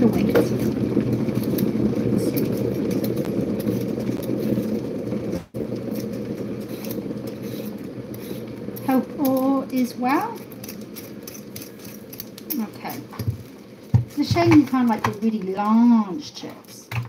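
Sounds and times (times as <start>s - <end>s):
low background noise with hum: 0.0s - 17.0s
peeler scraping potato: 1.3s - 13.4s.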